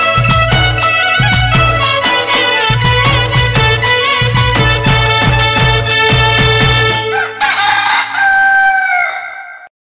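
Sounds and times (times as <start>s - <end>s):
folk song with drum beat: 0.0s - 7.2s
rooster crowing: 7.1s - 9.7s.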